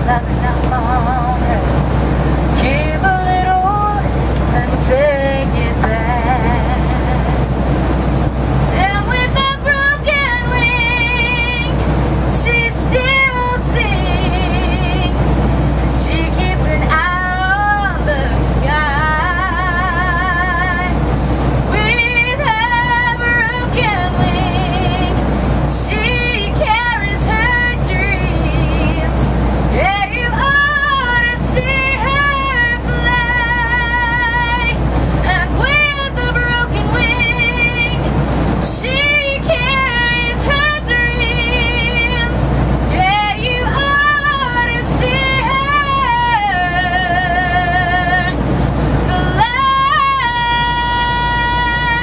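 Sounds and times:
woman singing over public address: 0.0s - 1.8s, 2.4s - 7.5s, 8.6s - 21.0s, 21.7s - 52.0s
aircraft cabin drone: 0.0s - 52.0s.

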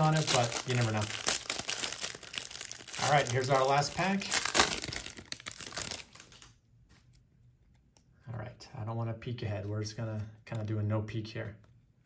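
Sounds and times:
plastic wrapper crinkling: 0.0s - 6.6s.

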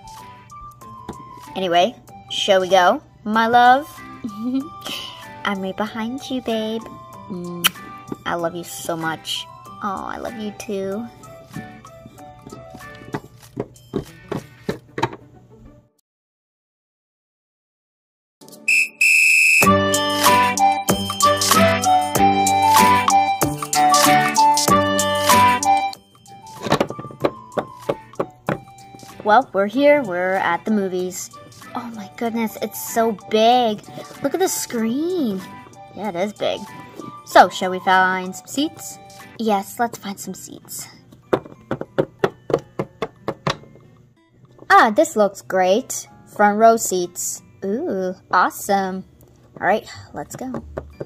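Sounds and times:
high-pitched whistle-like tones: 18.6s - 19.8s
music with a beat: 19.6s - 29.2s
toy figurines tapping on table: 26.6s - 29.2s, 41.3s - 43.8s, 50.5s - 51.0s.

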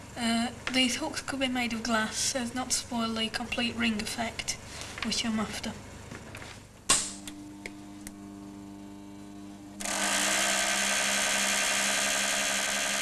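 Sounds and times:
low steady hum: 0.0s - 9.9s
loud harsh spark buzz: 9.8s - 13.0s.

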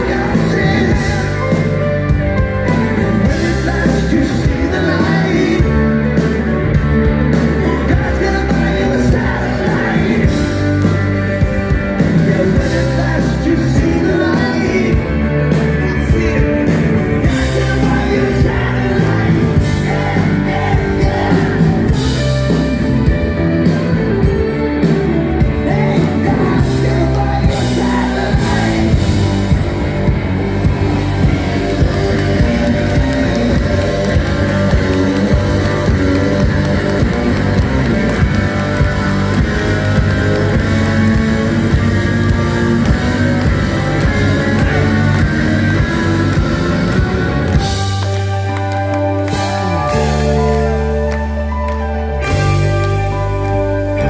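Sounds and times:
person singing: 0.0s - 22.8s, 25.4s - 30.1s, 31.0s - 53.6s
rock band playing live: 0.0s - 54.0s.

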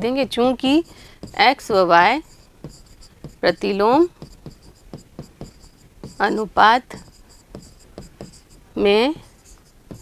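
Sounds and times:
pen writing on a board: 0.4s - 10.0s.

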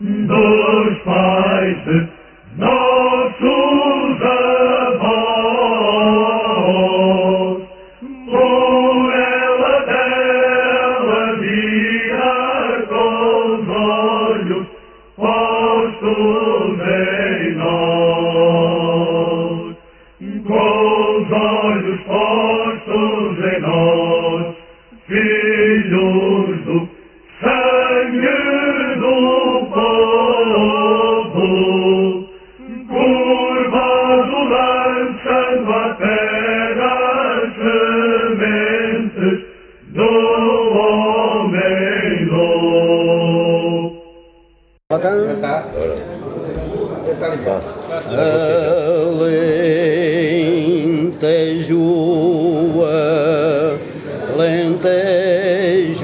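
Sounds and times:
male voices singing folk song: 0.0s - 43.9s, 48.1s - 56.0s.

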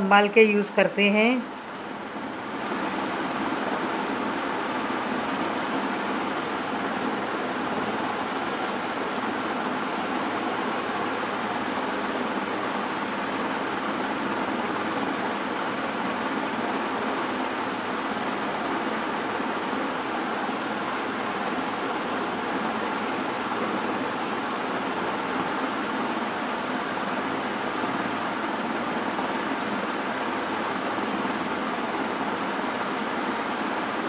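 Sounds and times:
steady even noise: 0.0s - 34.0s.

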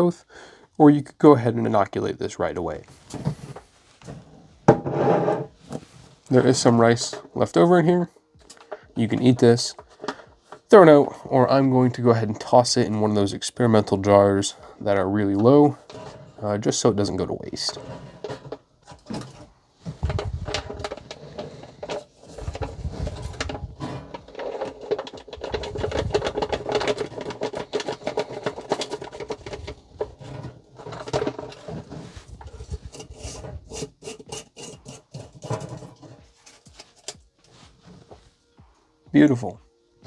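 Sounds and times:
plastic and foil crinkling: 19.9s - 33.0s.

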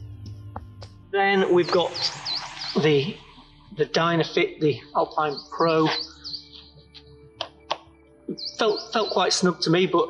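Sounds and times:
small birds chirping: 1.5s - 10.0s.

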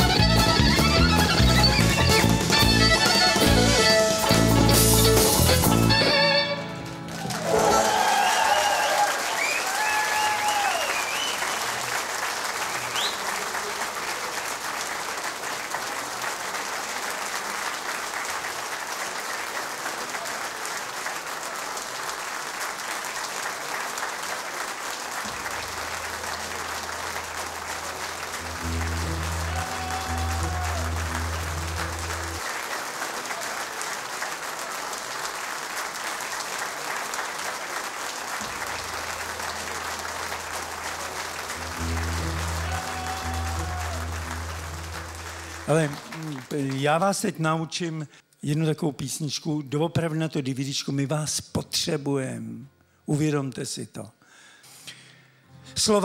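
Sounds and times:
audience applauding: 0.0s - 47.3s
person shouting or cheering: 7.2s - 10.9s, 28.4s - 31.8s, 41.7s - 46.3s.

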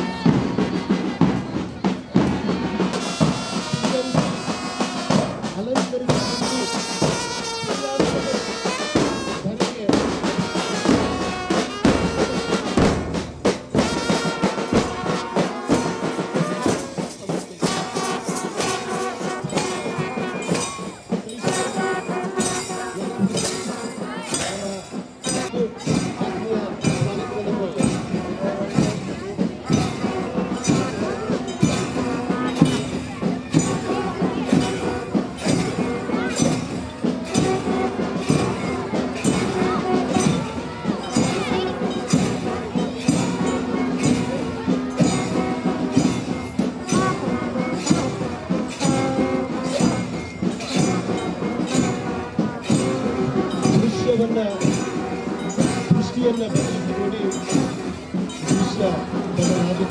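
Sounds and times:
bass and snare drums marching: 0.0s - 59.9s
crowd voices: 0.0s - 59.9s
trumpet melody: 2.2s - 27.4s, 29.7s - 59.8s.

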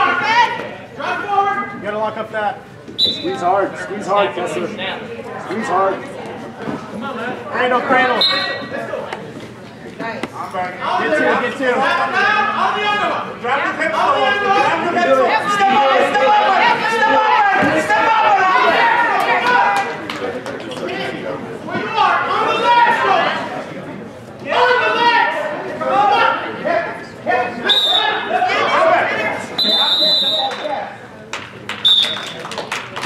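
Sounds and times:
referee's whistle blasts: 3.0s - 3.4s, 8.2s - 8.7s, 27.6s - 28.3s, 29.6s - 30.7s, 31.8s - 32.4s
voices shouting: 11.8s - 20.0s.

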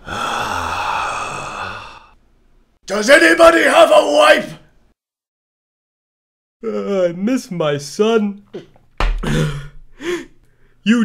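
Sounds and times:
man sighing: 0.0s - 2.2s, 9.2s - 10.6s.

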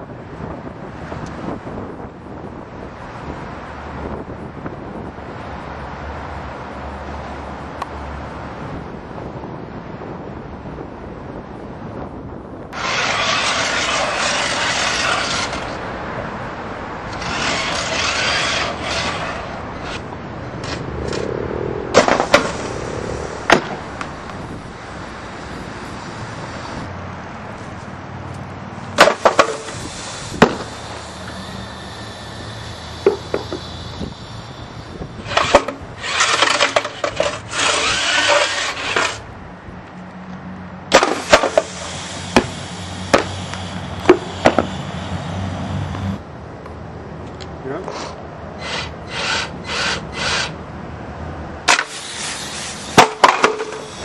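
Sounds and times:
loud rushing noise: 12.7s - 39.8s, 40.6s - 47.0s
low hum: 12.8s - 27.5s, 29.6s - 39.4s
sharp bangs: 21.9s - 24.4s, 29.0s - 32.2s, 40.9s - 43.4s
sharp bang: 23.4s - 24.1s.

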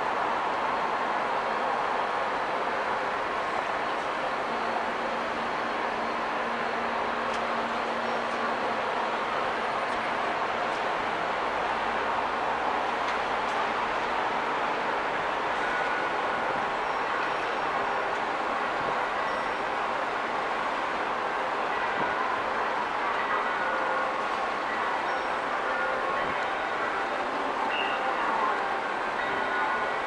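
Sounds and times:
busy railway station din: 0.0s - 30.0s.

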